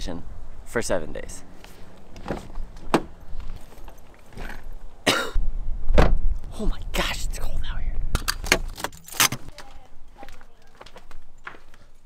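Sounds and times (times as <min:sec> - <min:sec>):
man coughing: 0:05.0 - 0:05.4.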